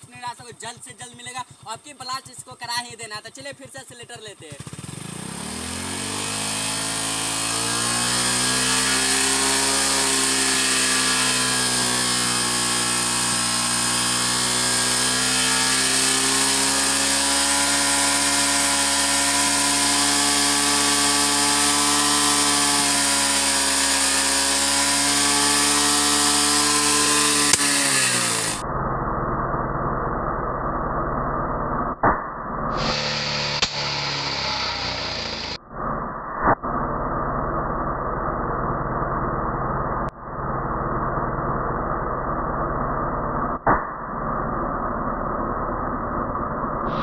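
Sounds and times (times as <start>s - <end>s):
motorcycle engine revving: 0.0s - 47.0s.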